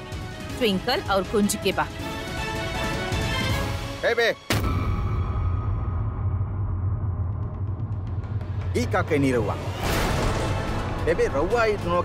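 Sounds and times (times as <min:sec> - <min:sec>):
dramatic background score: 0:00.0 - 0:12.0.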